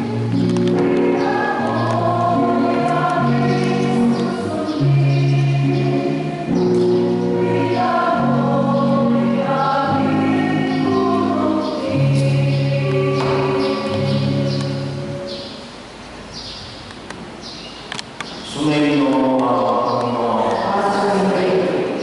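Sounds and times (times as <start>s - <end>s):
choir singing long notes: 0.0s - 15.8s.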